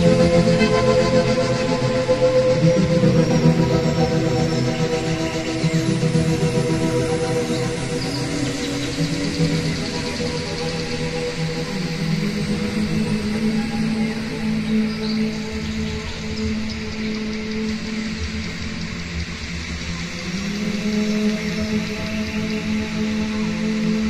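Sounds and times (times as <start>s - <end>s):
music with slow held notes: 0.0s - 24.0s.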